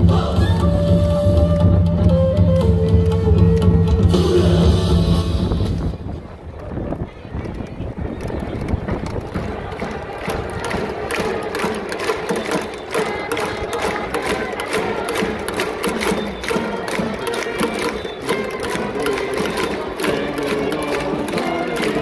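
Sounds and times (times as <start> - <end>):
crowd singing along: 9.3 - 22.0
trumpets playing cheer song: 10.1 - 22.0.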